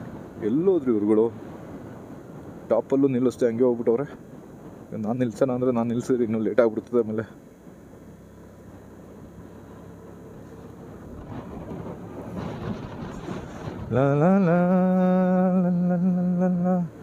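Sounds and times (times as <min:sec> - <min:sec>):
wind and two-wheeler running noise: 0:00.0 - 0:17.0
man humming a held note: 0:13.9 - 0:17.0.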